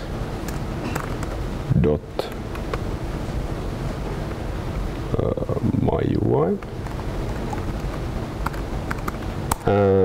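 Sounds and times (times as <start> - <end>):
steady room noise: 0.0 - 10.0
laptop keys clicking: 6.7 - 9.7.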